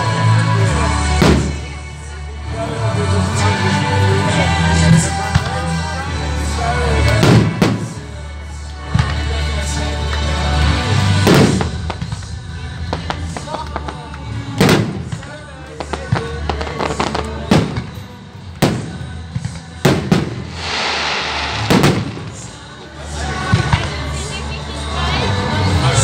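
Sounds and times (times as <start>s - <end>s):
firework shells bursting: 19.9s - 22.8s
crackling hiss of firework stars: 20.0s - 22.8s.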